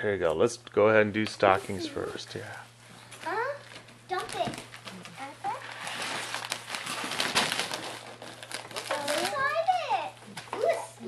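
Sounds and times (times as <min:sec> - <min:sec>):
rustling and crinkling of wrappings: 0:01.4 - 0:10.9.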